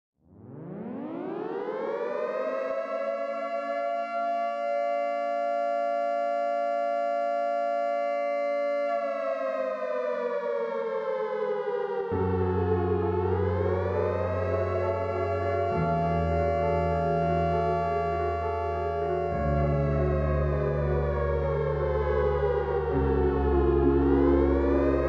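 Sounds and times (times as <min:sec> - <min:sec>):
civil defense siren: 0:00.3 - 0:25.0.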